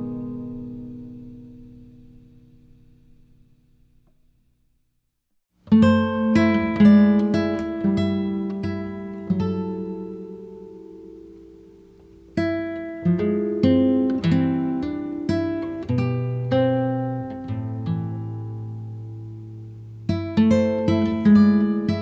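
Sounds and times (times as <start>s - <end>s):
acoustic guitar plucked notes: 0.0s - 3.9s, 5.6s - 22.0s.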